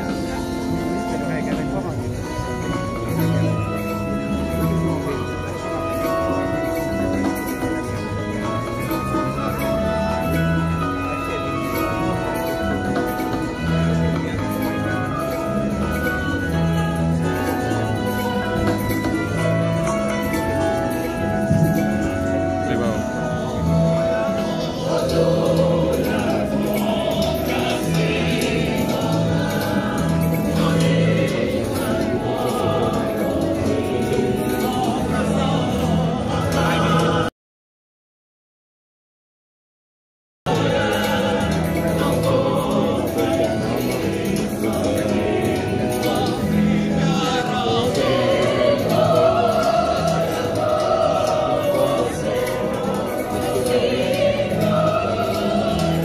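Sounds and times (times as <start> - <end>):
instrumental accompaniment: 0.0 - 37.3, 40.5 - 56.0
choir singing: 23.4 - 37.3, 40.5 - 56.0.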